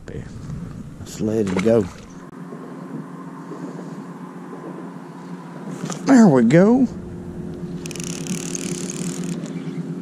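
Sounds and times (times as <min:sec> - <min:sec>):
steady low hum: 0:06.4 - 0:10.0
fishing reel ratcheting whir: 0:07.8 - 0:09.7.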